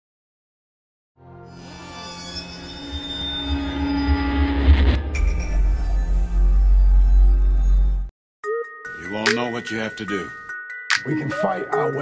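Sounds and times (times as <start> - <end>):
ringing squeal-like tones: 1.5 - 8.1.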